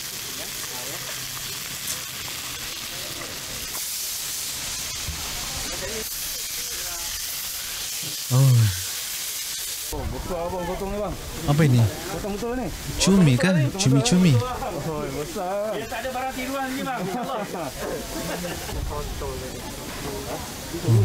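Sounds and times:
fish sizzling on griddle: 0.0 - 21.0
loud vocal exclamation: 8.3 - 8.8, 20.8 - 21.0.

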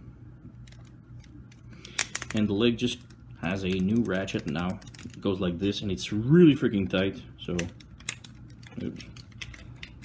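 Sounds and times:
plastic figure parts clicking: 3.6 - 5.2.

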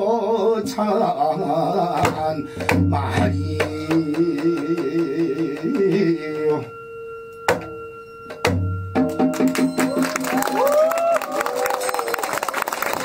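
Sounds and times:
metallic ringing: 0.9 - 10.5
hourglass drum strokes: 1.9 - 10.8
audience applauding: 9.3 - 13.0.

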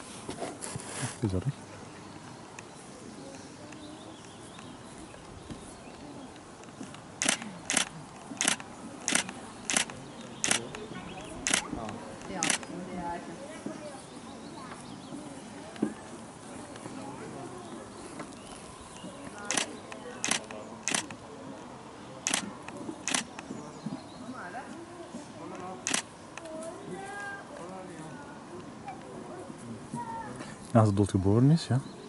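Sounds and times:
camera shutter clicking: 7.2 - 10.6, 11.4 - 11.7, 12.4 - 12.6, 19.5 - 21.1, 22.3 - 22.5, 23.1 - 23.3, 25.9 - 26.1.

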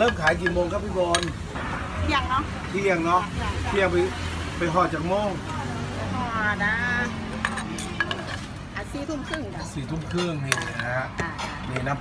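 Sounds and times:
utensils and dishes clinking: 0.0 - 1.7, 6.8 - 12.0
woman talking: 2.0 - 2.6, 3.2 - 4.3, 5.4 - 8.0.

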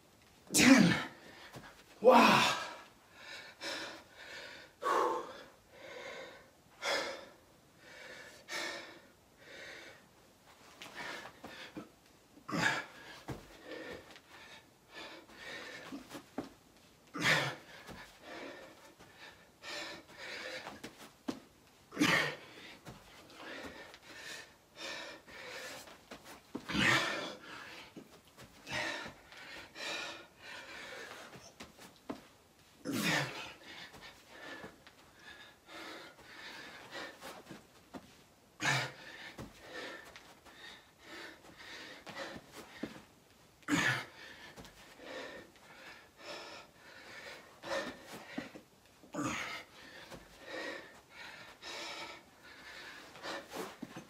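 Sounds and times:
man panting: 0.5 - 10.0, 10.8 - 16.5, 17.1 - 32.2, 32.8 - 54.0.

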